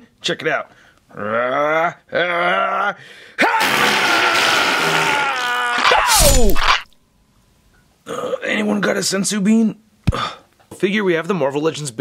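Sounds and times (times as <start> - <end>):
long held yell: 3.4 - 6.7
rising cry: 3.4 - 6.9.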